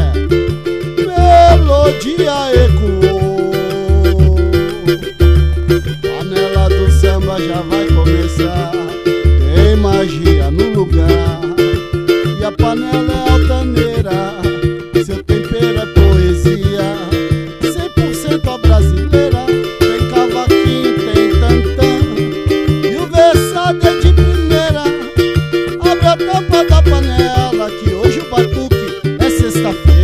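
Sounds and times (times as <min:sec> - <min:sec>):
cavaquinho strumming: 0:00.0 - 0:30.0
pandeiro: 0:00.0 - 0:30.0
wooden hand drum: 0:00.0 - 0:30.0.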